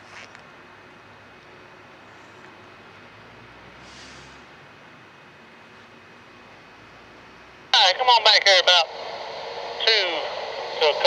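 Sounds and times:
two-way radio voice: 0:07.8 - 0:08.9, 0:09.8 - 0:11.0.

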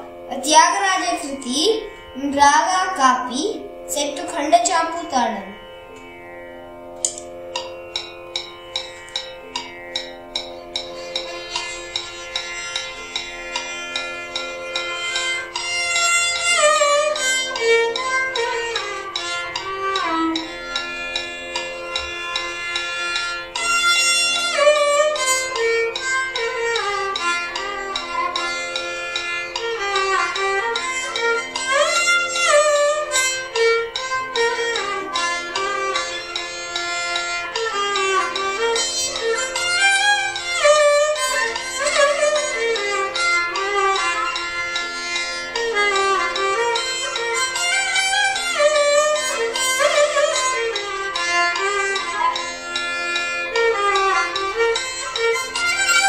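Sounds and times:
violin melody with slides: 0:00.0 - 0:56.0.

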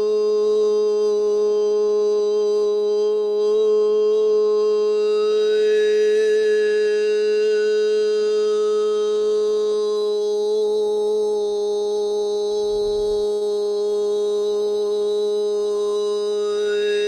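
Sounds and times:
man holding a steady vocal tone: 0:10.0 - 0:17.0.

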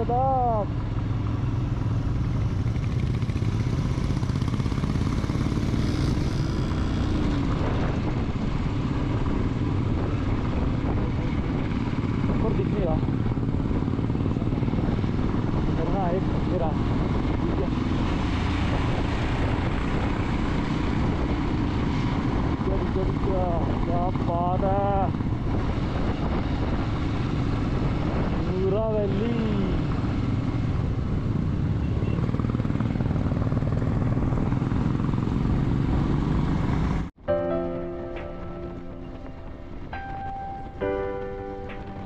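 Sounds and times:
motorcycle engine running: 0:00.0 - 0:37.1
wind noise: 0:03.6 - 0:37.1
motorcycle engine thumping: 0:39.1 - 0:42.0.

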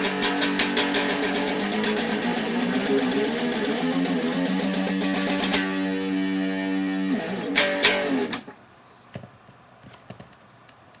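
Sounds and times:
hands tapping electric guitar: 0:00.0 - 0:08.6.

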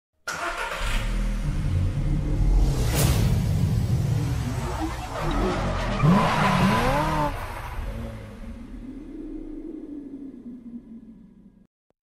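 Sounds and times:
car engine revving: 0:00.3 - 0:11.6.

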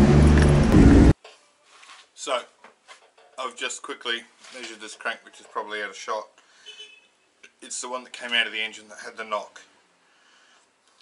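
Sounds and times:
car engine running: 0:00.0 - 0:01.2.

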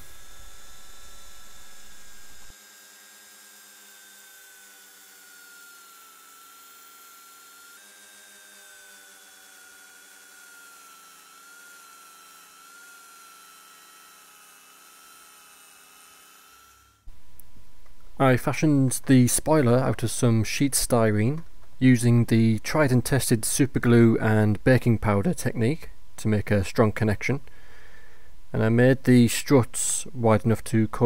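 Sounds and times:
rotary tool grinding metal: 0:00.0 - 0:17.1.

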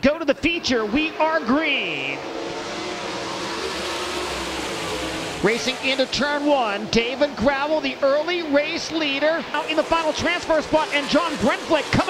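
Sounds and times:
racing car engines droning: 0:00.0 - 0:12.0.

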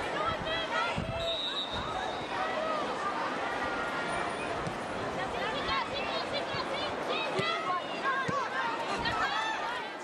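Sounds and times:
high whistle: 0:01.2 - 0:02.2.

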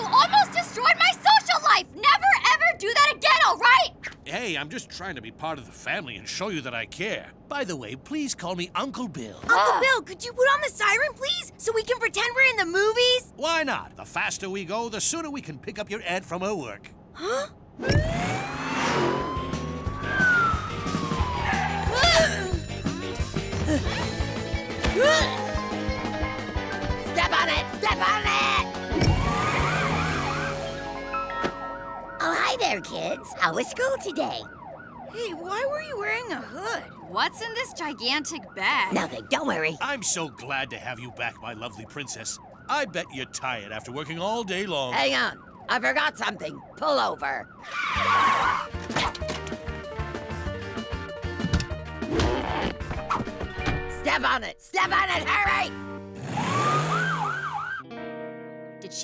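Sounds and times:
police siren wailing: 0:17.8 - 0:22.5, 0:29.1 - 0:48.8, 0:56.2 - 0:57.9
background music: 0:17.9 - 0:33.8, 0:48.0 - 0:59.0.

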